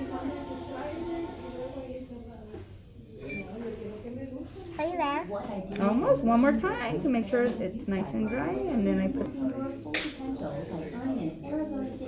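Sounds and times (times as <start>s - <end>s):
faint background voices: 0.0s - 12.0s
high beep of curing light: 3.2s - 3.5s
woman speaking: 5.7s - 9.5s.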